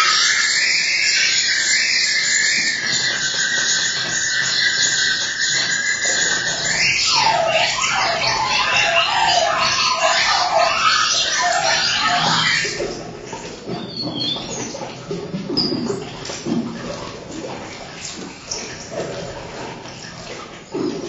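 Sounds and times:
electronic noise music: 0.8 - 14.7.

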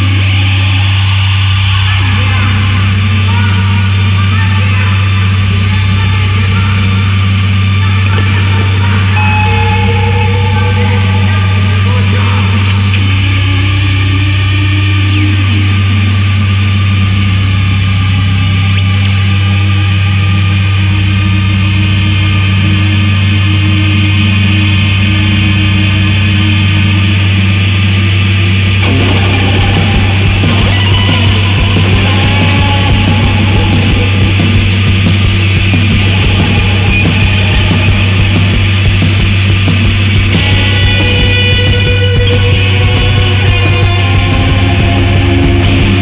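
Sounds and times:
electric guitar noise drone: 0.0 - 46.0.

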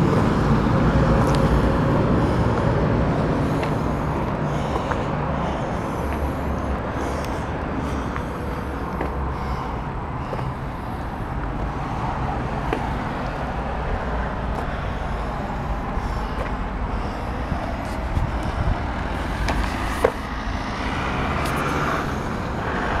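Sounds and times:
road traffic: 0.0 - 23.0.

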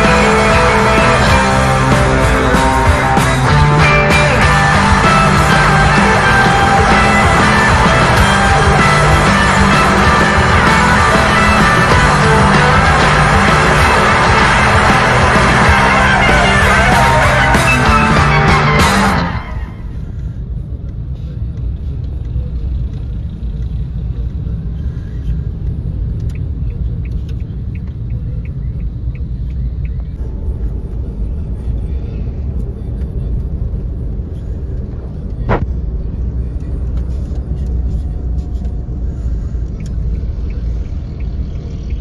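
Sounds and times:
engine and road noise in cabin: 0.0 - 42.0.

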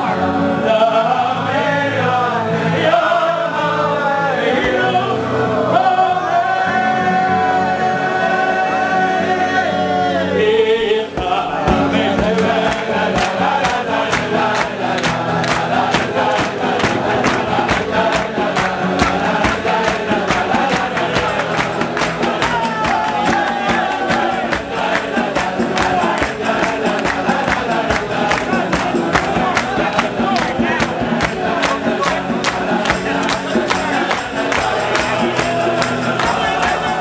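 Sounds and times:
acoustic guitars strumming: 0.0 - 37.0
crowd of men singing: 0.0 - 37.0
rhythmic hand clapping: 11.0 - 37.0.

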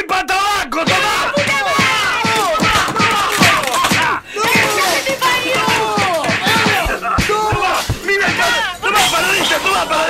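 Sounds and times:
people shouting: 0.7 - 10.0
music with thudding beat: 5.6 - 8.7.

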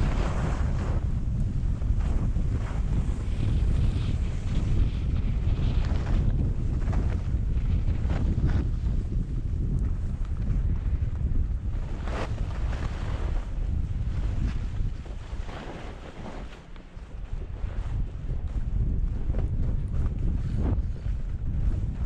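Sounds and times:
wind buffeting microphone: 0.0 - 22.0
ski edges scraping snow: 14.1 - 17.8.

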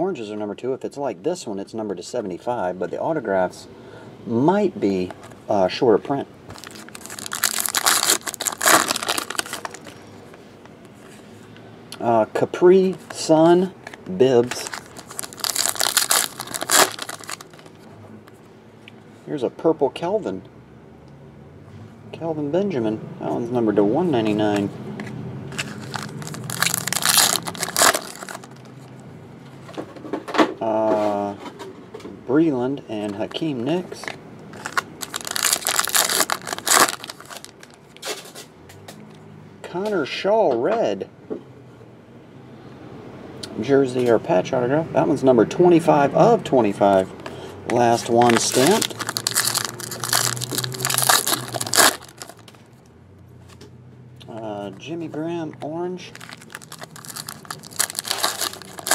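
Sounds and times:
cards and foil wrapper crinkling: 6.5 - 10.0, 14.4 - 17.9, 25.5 - 28.8, 33.3 - 38.3, 47.8 - 52.6, 56.1 - 58.9.

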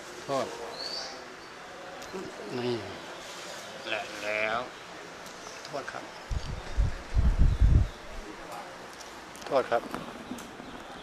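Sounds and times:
dull low thumps: 6.3 - 7.9.

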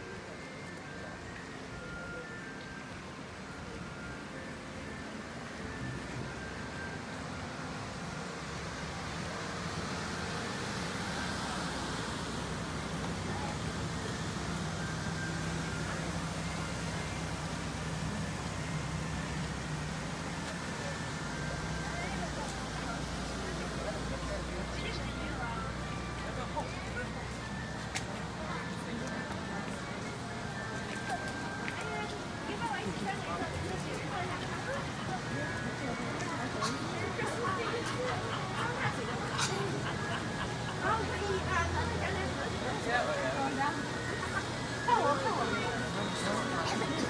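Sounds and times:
distant people chattering: 0.0 - 47.0.

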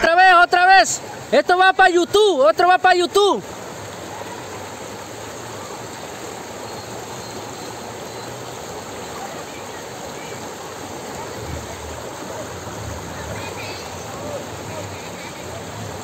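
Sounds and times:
river rushing: 0.0 - 16.0.

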